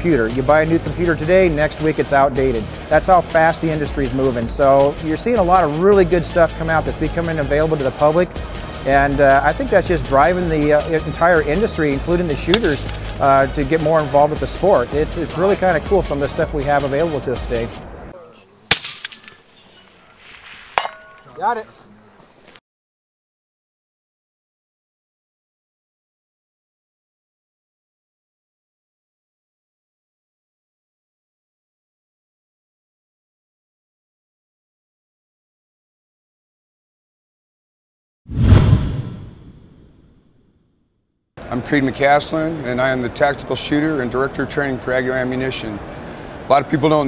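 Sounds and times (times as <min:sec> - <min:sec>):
whoosh with deep rumble: 0:38.3 - 0:40.4.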